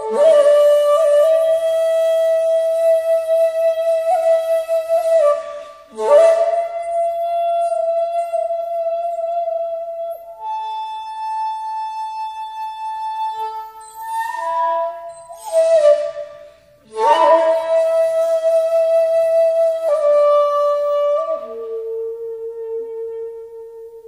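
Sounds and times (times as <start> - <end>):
bamboo flute long held notes: 0.0 - 24.0.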